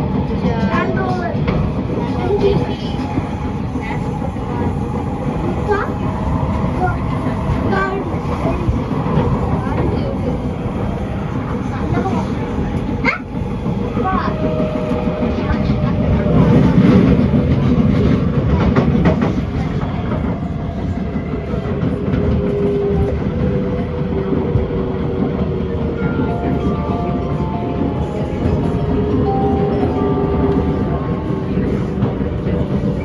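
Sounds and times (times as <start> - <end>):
train wheels rumbling on rail: 0.0 - 33.0.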